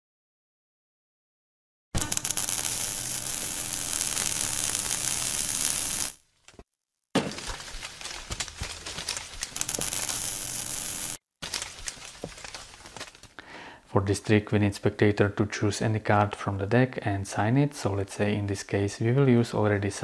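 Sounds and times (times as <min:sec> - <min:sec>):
crackling and sizzling sound effect: 0:02.0 - 0:06.6, 0:07.4 - 0:13.1.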